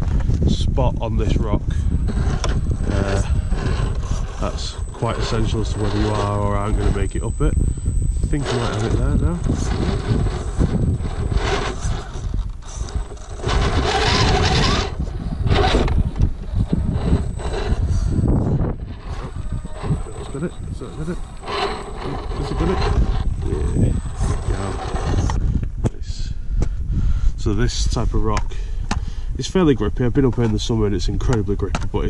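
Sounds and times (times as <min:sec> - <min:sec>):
electric motor and gears whining: 0:00.0 - 0:26.8
low rumble: 0:00.9 - 0:26.3.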